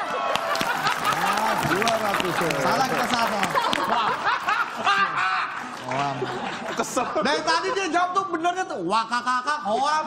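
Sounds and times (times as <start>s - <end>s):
people laughing: 0.1s - 8.2s.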